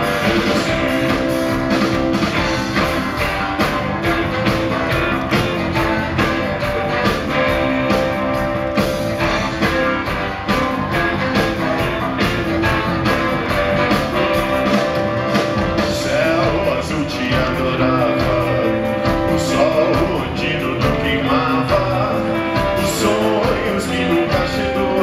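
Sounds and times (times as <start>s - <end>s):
drum kit: 0.0s - 25.0s
guitars with held notes: 0.0s - 25.0s.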